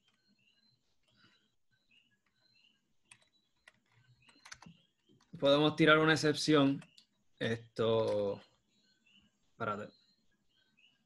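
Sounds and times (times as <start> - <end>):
faint keyboard keystrokes: 3.0 - 5.4.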